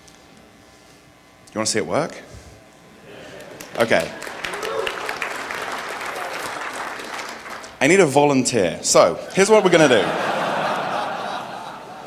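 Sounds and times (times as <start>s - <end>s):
audience applauding: 3.2s - 7.8s.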